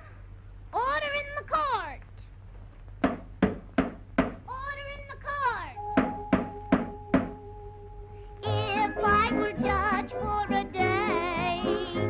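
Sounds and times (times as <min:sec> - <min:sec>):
sharp knocks: 0:03.0 - 0:04.4, 0:06.0 - 0:07.4
held musical note: 0:05.8 - 0:10.5.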